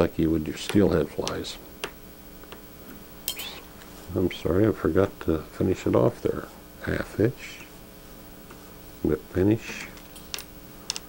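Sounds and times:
scissors metallic clink: 0:03.3 - 0:03.6.

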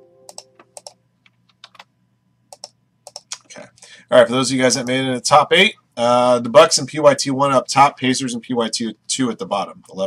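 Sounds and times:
ringing multi-note tone: 0:00.0 - 0:00.6.

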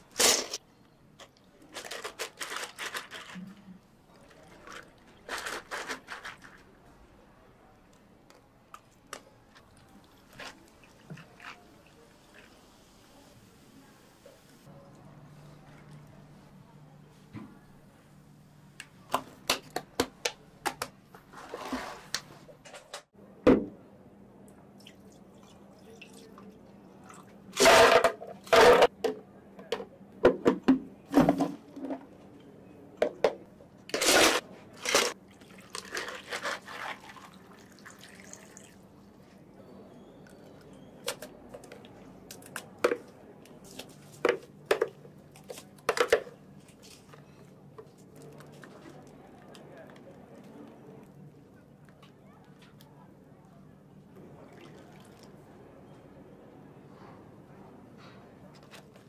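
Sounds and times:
ice dropped into plastic cups: 0:01.2 - 0:03.6, 0:04.2 - 0:06.7, 0:33.9 - 0:38.7, 0:41.0 - 0:51.2
liquid being poured: 0:36.8 - 0:38.8.

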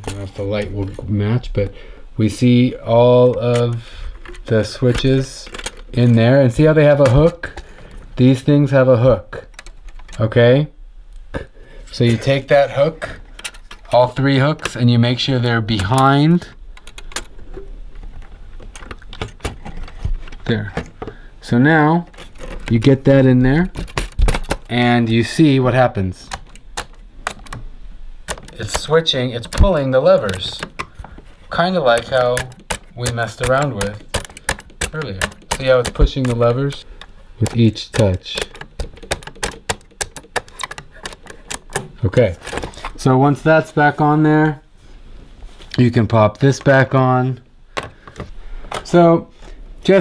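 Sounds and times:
small metal clicks and rattles: 0:03.2 - 0:06.3, 0:28.3 - 0:42.7.

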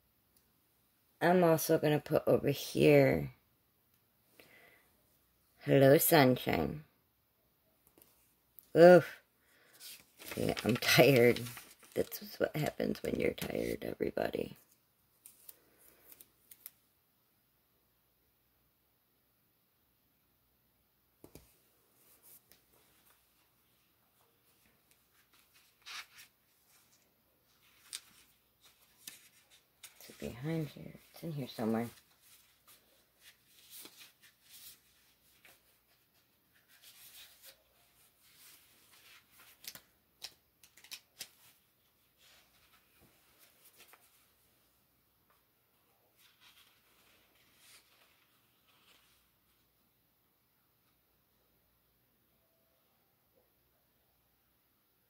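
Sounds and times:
soft rustle of paper: 0:07.8 - 0:16.9, 0:21.2 - 0:50.1.

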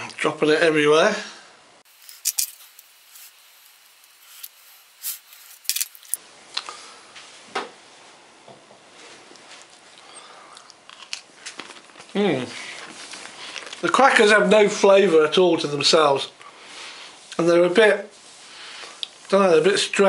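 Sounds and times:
cracker cracking: 0:01.9 - 0:06.2
crunching chewing: 0:01.9 - 0:06.2, 0:09.9 - 0:12.2.

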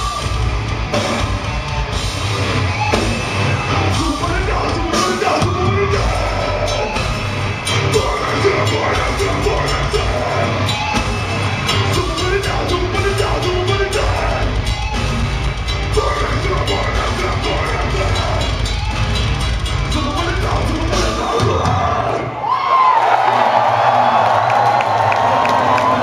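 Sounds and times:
distorted guitars: 0:00.0 - 0:22.4
heavy drums: 0:00.0 - 0:22.4
harsh yelled vocals: 0:01.6 - 0:26.0.

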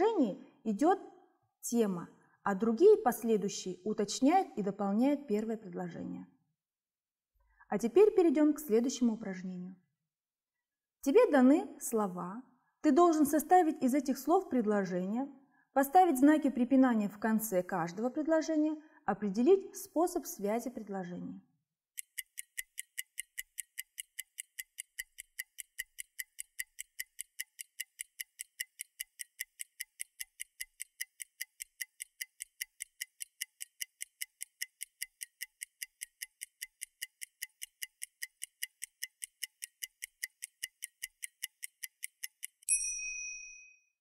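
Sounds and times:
clock ticking: 0:22.0 - 0:42.7
bright ding: 0:42.7 - 0:43.9.

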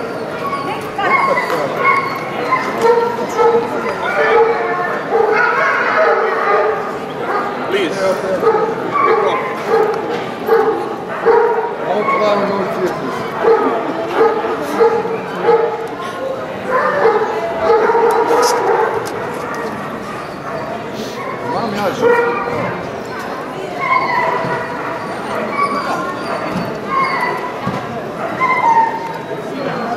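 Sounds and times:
people talking: 0:00.0 - 0:11.1
dogs barking and yelping: 0:00.0 - 0:29.6.

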